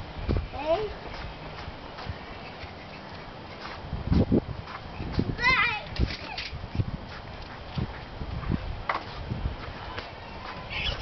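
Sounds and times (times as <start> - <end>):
dull low footstep thumps: 0.2 - 2.3, 3.2 - 5.4, 6.7 - 10.7.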